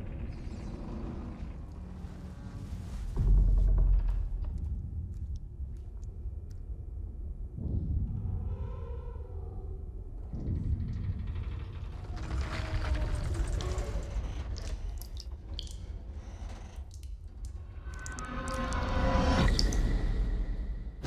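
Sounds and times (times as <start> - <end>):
low rumble: 0.0 - 21.0
small ticks: 14.4 - 19.8
water dripping: 14.4 - 20.2.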